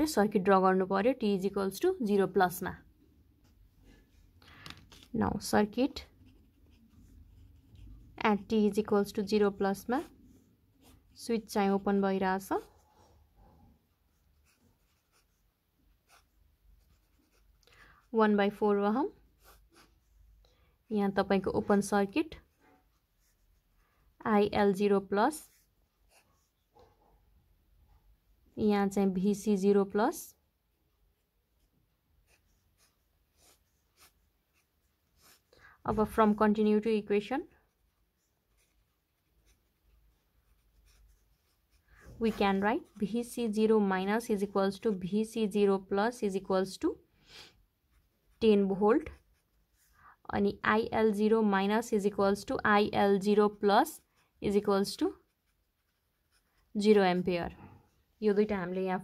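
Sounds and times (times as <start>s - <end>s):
pen scratching on paper: 4.9s - 13.2s, 13.9s - 26.8s, 31.2s - 46.7s, 47.4s - 58.8s.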